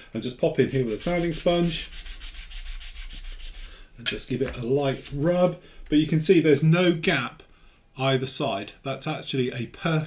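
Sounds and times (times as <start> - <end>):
sanding sponge scratching plastic: 0.7 - 3.7.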